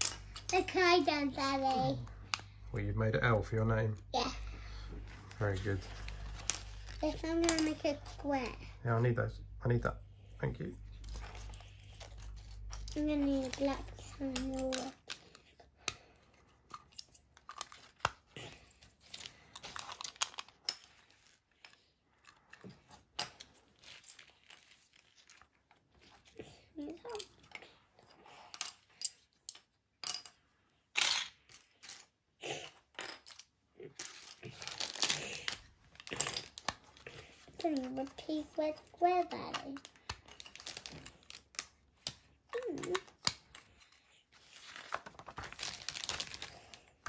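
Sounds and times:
pieces clattering on wooden table: 28.5 - 30.4.

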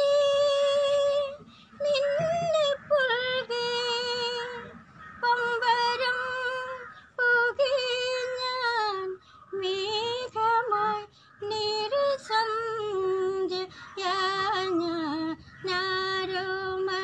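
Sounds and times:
woman singing with vibrato: 0.0 - 17.0.

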